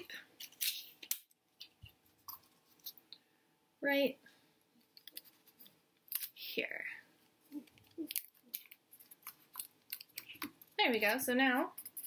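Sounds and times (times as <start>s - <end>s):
light handling sounds: 4.8s - 6.3s.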